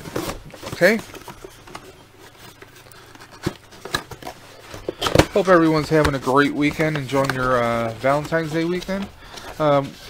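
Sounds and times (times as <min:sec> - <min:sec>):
cardboard box handling: 0:00.0 - 0:10.0.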